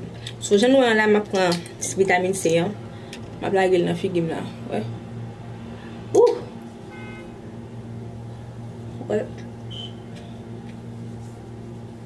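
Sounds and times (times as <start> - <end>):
steady low hum: 0.0 - 12.0
woman speaking: 0.4 - 2.8, 3.4 - 5.0, 9.0 - 9.5.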